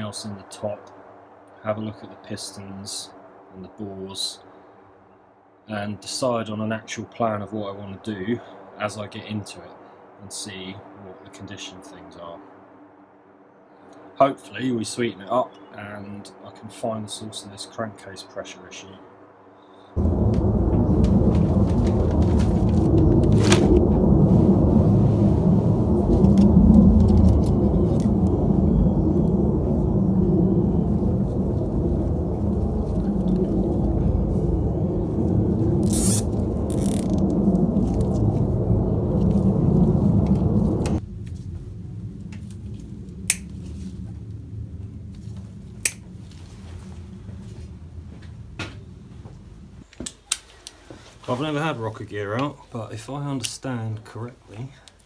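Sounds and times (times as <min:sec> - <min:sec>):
loud low rumbling: 0:20.0 - 0:50.0.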